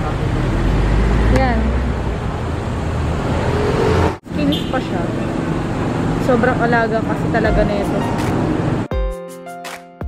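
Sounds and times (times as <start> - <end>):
road traffic: 0.0 - 8.9.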